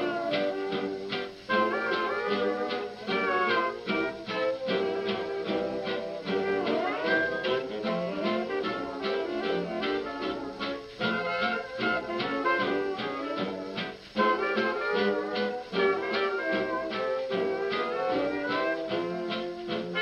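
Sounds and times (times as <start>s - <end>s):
jazz dance orchestra: 0.0s - 20.0s.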